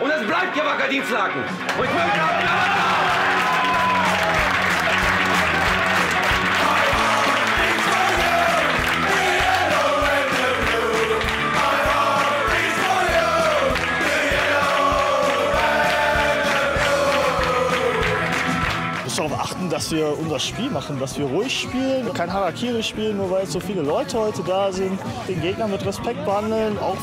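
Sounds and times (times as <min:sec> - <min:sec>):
people clapping: 0:01.4 - 0:19.6
music with a steady beat: 0:02.7 - 0:19.1
men singing a chant: 0:06.5 - 0:18.5.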